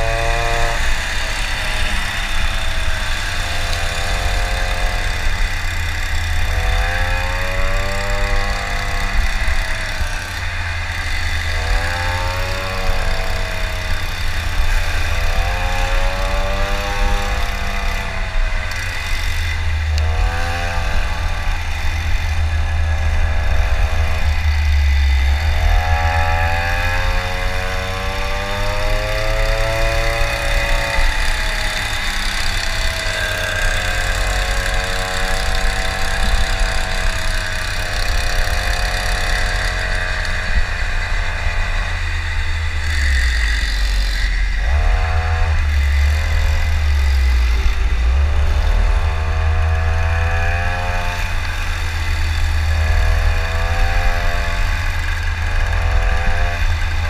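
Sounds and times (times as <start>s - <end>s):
electric scooter motor: 0.0s - 57.0s.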